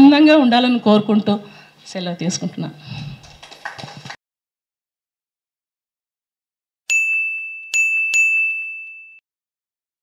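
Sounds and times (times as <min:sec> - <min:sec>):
bright chime dings: 0:06.9 - 0:09.2.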